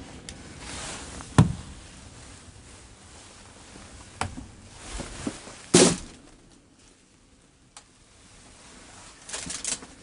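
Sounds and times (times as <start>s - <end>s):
brief rustle: 9.0s - 10.0s.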